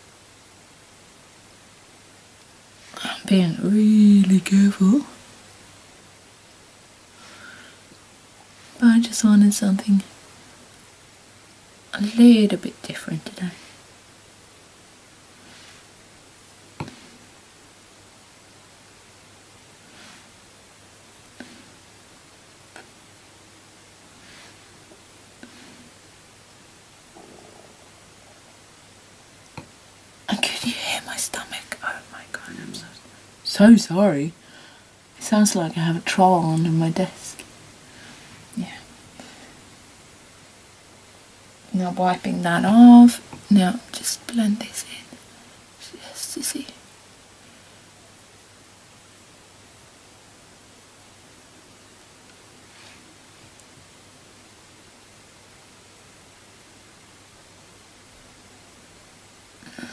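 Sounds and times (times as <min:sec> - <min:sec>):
microphone hiss: 0:00.0 - 0:59.9
soft rustle: 0:02.4 - 0:29.4, 0:35.2 - 0:39.9, 0:52.2 - 0:53.9
stomach gurgling: 0:27.1 - 0:28.5.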